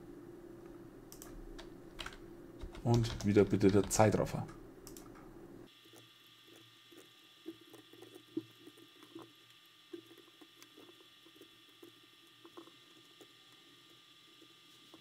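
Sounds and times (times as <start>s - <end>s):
computer mouse and keyboard clicks: 1.1s - 5.3s.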